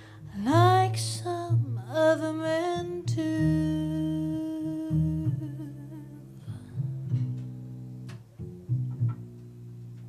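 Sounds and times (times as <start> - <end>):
plucked bass line: 0.2 - 10.0
guitar accompaniment: 2.6 - 10.0.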